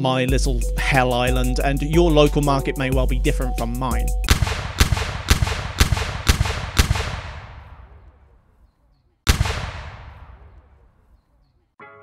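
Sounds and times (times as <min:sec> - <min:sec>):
sharp echoing bangs: 0:04.0 - 0:08.7, 0:09.3 - 0:11.2.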